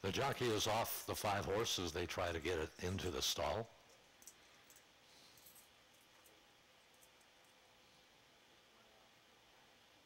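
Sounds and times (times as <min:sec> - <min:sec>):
faint steady hiss: 0:00.0 - 0:10.0.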